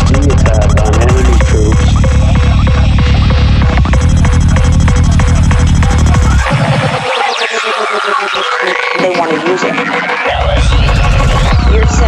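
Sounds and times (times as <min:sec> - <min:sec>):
stuttering croak-like synth pulse: 0:00.0 - 0:12.0.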